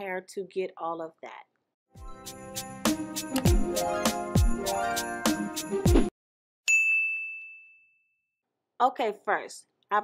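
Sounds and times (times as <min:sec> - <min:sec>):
bright bell-like ding: 0:06.7 - 0:08.2.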